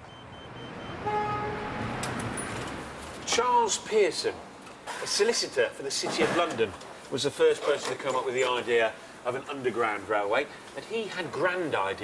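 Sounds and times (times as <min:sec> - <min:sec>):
street traffic noise: 0:00.0 - 0:12.0
vehicle horn: 0:00.3 - 0:02.0.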